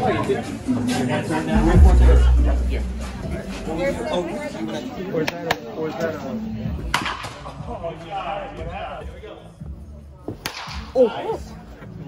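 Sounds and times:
background voices: 1.4s - 5.1s.

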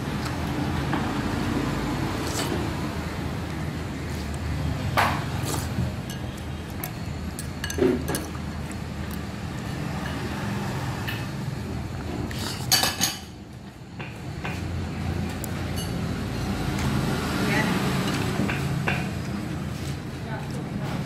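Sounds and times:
spoon clinking against bowl: 6.0s - 6.4s, 7.4s - 8.4s.

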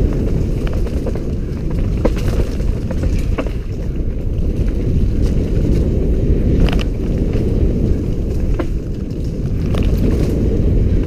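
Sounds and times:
bike clicks and knocks: 0.0s - 11.0s
tyres on rocky dirt trail: 0.0s - 11.0s
wind buffeting microphone: 0.0s - 11.0s.

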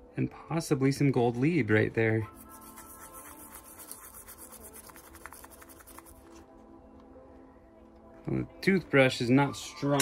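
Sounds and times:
quiet background music: 0.0s - 10.0s
toothbrush scrubbing a chip: 2.3s - 6.5s.

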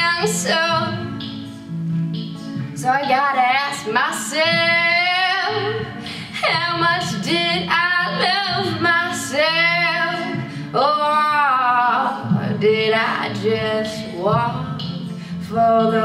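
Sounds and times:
low sustained guitar: 0.0s - 16.0s
person singing wordless vowels: 2.8s - 16.0s.

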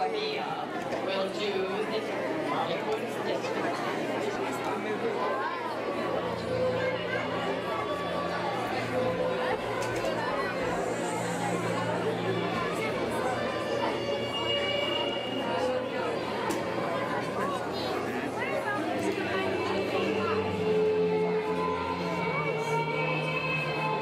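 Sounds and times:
children chattering: 0.0s - 24.0s.

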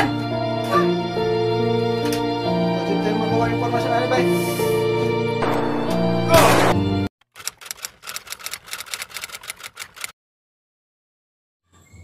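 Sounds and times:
typewriter key clicks: 7.4s - 10.1s.

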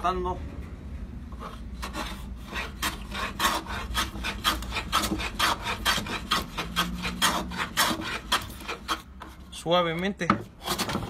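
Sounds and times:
hand plane cutting wood: 1.4s - 9.4s, 10.5s - 11.0s.

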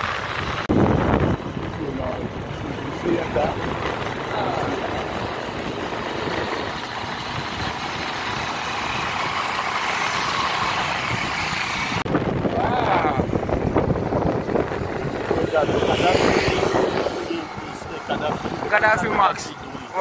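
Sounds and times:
motorbike engine running: 0.0s - 19.3s
large vehicle passing: 0.0s - 20.0s
traffic noise: 0.0s - 20.0s
wind rushing: 0.0s - 20.0s.

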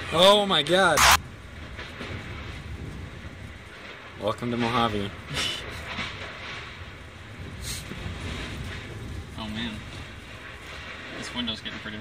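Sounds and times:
strong storm wind rumble: 0.0s - 12.0s
loud noise burst: 0.9s - 2.6s.

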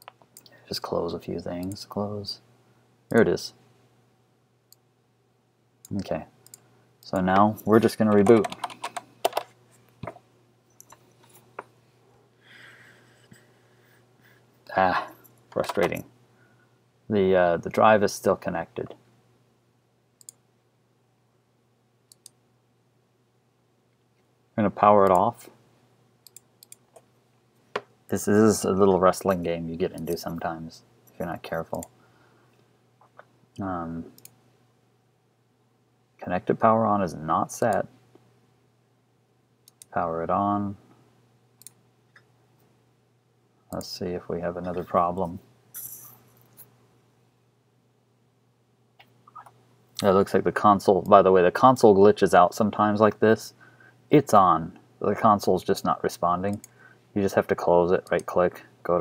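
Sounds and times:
computer mouse clicks: 22.1s - 22.4s, 26.2s - 27.1s, 34.2s - 34.4s, 39.7s - 39.9s, 41.6s - 42.3s.

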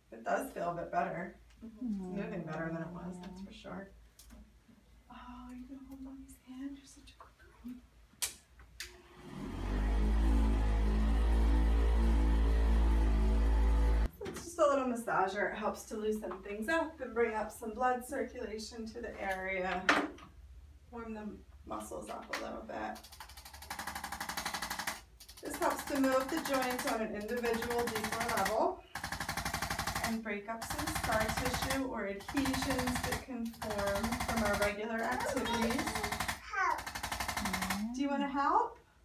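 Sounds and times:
massager motor humming: 8.9s - 14.1s
percussion massager hammering: 23.1s - 37.9s.

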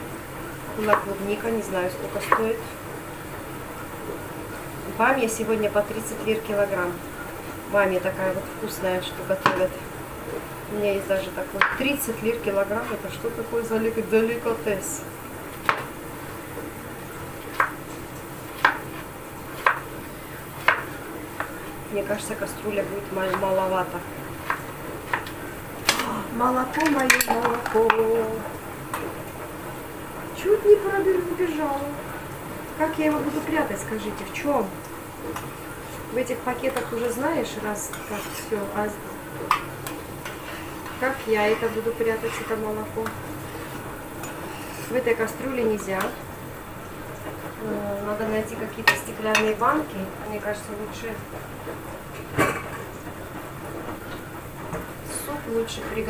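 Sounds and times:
kitchen background hiss: 0.0s - 56.0s.

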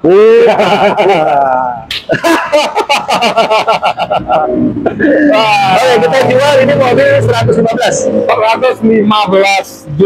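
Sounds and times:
man laughing hard: 0.1s - 6.4s.

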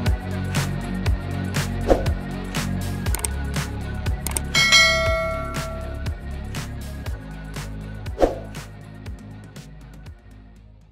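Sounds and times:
background music with steady beat: 0.0s - 10.9s
bright bell chime: 4.6s - 6.1s.

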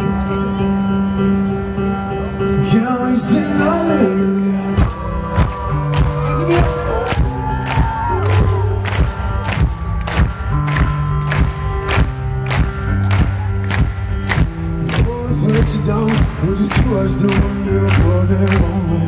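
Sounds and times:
sustained bass notes: 0.0s - 19.0s
steady drum beat: 4.8s - 19.0s.

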